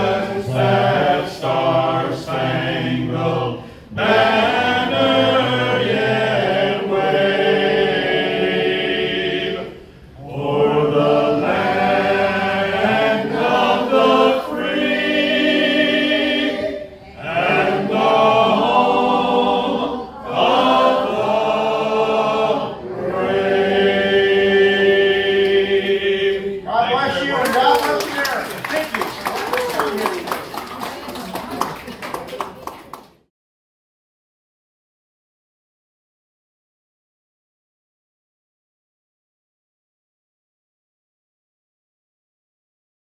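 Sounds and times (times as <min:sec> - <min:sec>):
men singing in close harmony: 0:00.0 - 0:26.6.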